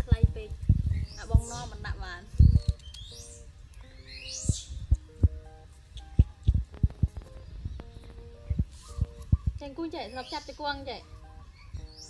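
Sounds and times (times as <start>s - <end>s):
held mid-range music notes: 0.0s - 12.0s
soft low beats: 0.0s - 12.0s.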